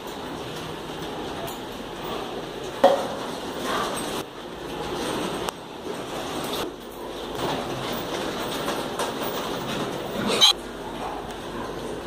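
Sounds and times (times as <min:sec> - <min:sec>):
piglets calling: 0:10.2 - 0:10.6.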